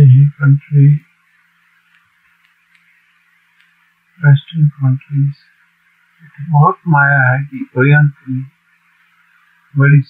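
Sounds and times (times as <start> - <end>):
person speaking: 0.0 - 1.1, 4.2 - 5.5, 6.2 - 8.6, 9.8 - 10.0
low steady hum: 0.0 - 10.0
soft hiss: 0.0 - 10.0
tiny clicks: 1.8 - 3.8.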